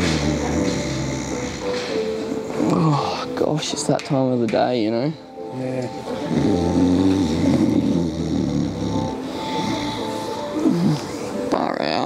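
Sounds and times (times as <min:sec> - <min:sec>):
man snoring: 0:00.0 - 0:01.7, 0:06.2 - 0:11.4.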